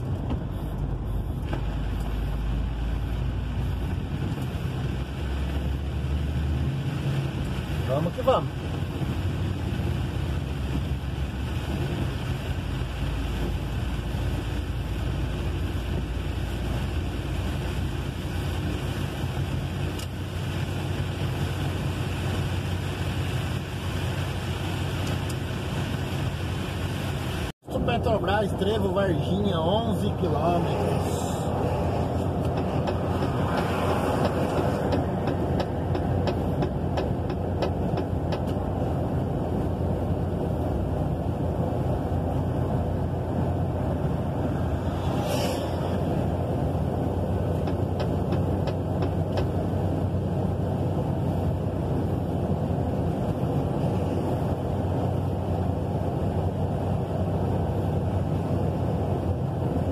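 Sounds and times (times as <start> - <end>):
truck engine drone: 0.0 - 59.9
tyres on a wet road: 0.0 - 59.9
brief rush: 44.8 - 46.2.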